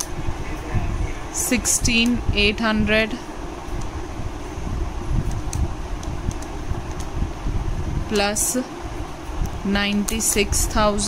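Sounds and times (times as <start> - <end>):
low rumbling background noise: 0.0 - 11.0
calculator keys clicking: 5.3 - 7.1, 9.8 - 10.7.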